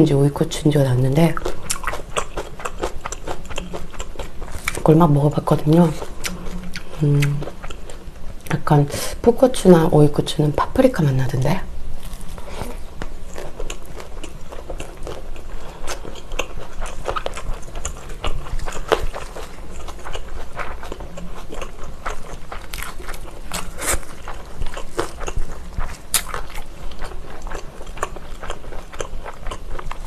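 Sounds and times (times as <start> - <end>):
chewing with crackly clicks: 1.3 - 4.9, 6.0 - 8.6, 13.0 - 30.0.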